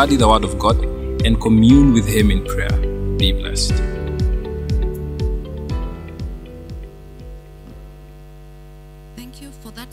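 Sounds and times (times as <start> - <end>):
background music: 0.0 - 7.9
electrical mains hum: 0.0 - 9.9.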